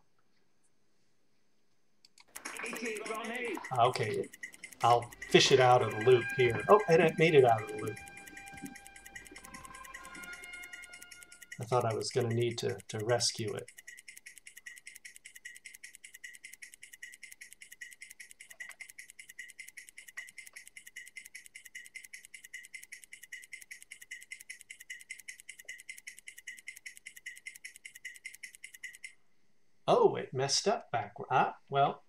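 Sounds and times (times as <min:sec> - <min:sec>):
rapid computer-generated clicks: 0:02.1 - 0:29.2.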